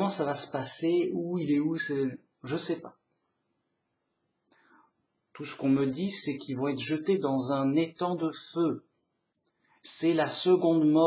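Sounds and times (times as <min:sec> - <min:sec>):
man breathing faintly: 0:04.5 - 0:05.0.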